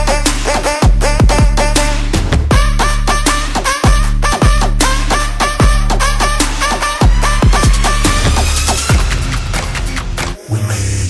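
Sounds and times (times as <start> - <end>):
low bass line: 0.0 - 10.3
deep kick drums: 0.8 - 9.9
synth stabs: 1.6 - 10.3.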